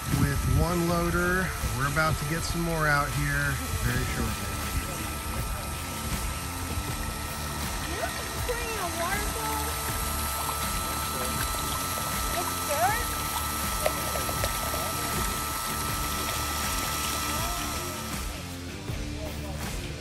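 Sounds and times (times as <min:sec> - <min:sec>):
water pouring down a sluice: 0:00.0 - 0:18.3
steady high hum: 0:00.0 - 0:20.0.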